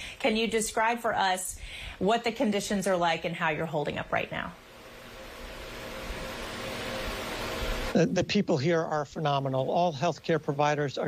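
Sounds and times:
faint hum: 0.0 - 11.0
line noise hiss: 0.0 - 11.0
man speaking: 7.9 - 11.0.

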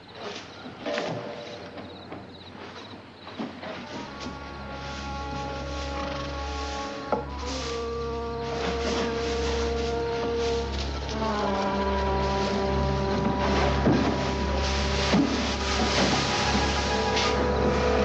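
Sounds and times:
tense dramatic film score: 3.8 - 18.0.

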